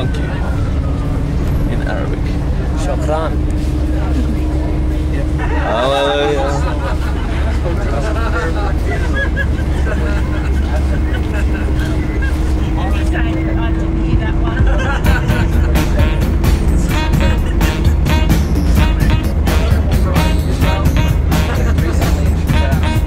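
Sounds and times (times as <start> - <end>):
engine and road rumble: 0.0 - 23.0
faint passenger voices: 0.0 - 23.0
music with a steady beat: 14.1 - 23.0.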